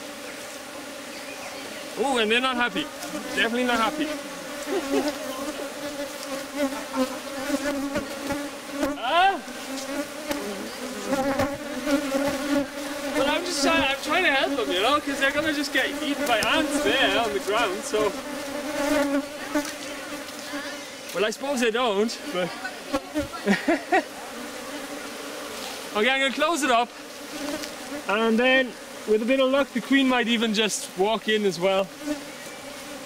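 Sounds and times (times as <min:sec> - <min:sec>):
bees buzzing: 0:00.0 - 0:33.0.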